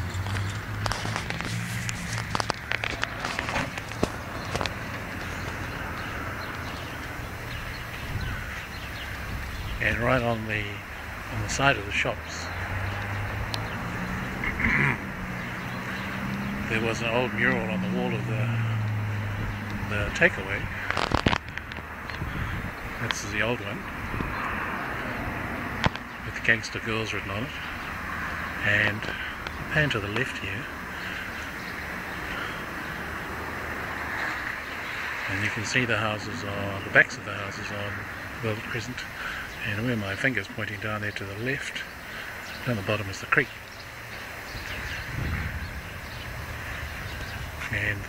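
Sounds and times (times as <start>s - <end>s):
steady background noise: 0.0s - 48.0s
steady low rumble: 18.3s - 24.4s, 44.5s - 48.0s.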